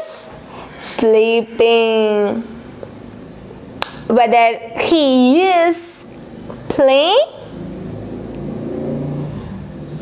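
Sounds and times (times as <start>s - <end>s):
low engine hum: 7.4s - 10.0s.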